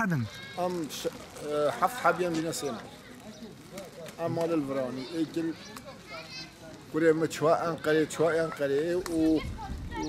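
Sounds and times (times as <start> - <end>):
children's voices: 0.2 - 1.3, 4.5 - 10.0.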